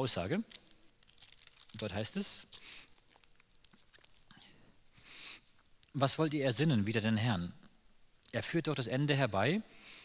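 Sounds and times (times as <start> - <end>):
book pages rustling: 0.6 - 4.4
soft breath: 4.3 - 5.6, 9.7 - 10.0.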